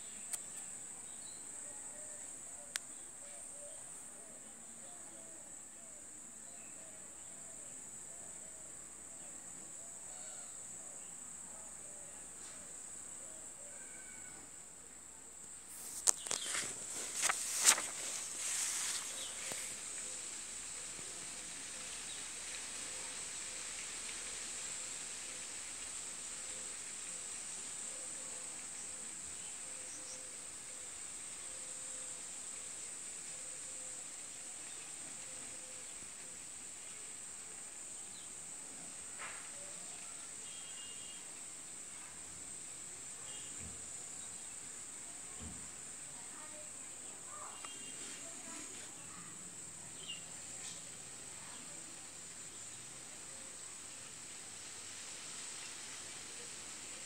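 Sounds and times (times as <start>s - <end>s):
high-pitched hiss: 0.0s - 57.0s.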